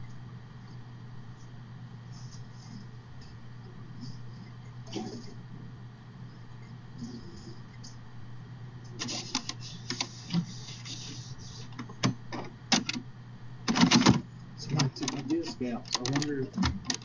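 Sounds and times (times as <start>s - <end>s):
low hum: 0.0s - 17.0s
keyboard and mouse clicking: 13.7s - 17.0s.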